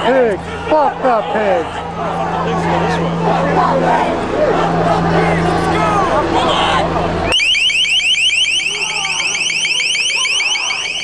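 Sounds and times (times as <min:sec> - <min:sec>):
rapid rising electronic chirps: 0:07.3 - 0:11.0.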